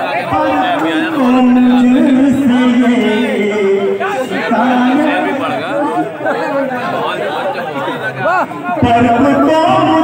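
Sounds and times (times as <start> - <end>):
babble of chatter: 0.0 - 10.0.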